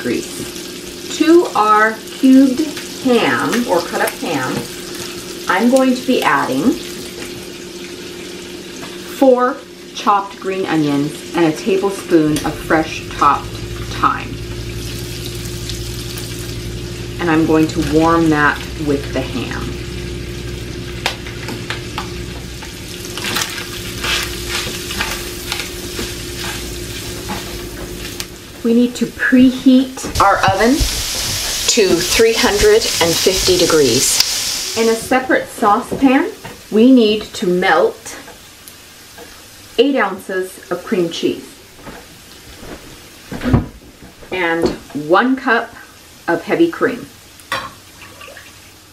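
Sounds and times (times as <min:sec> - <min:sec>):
food sizzling in a skillet: 0:00.0 - 0:43.4, 0:44.3 - 0:48.9
steady low hum: 0:09.6 - 0:35.9
spatula scraping a pan: 0:24.0 - 0:27.6
dull thump: 0:42.7 - 0:43.8.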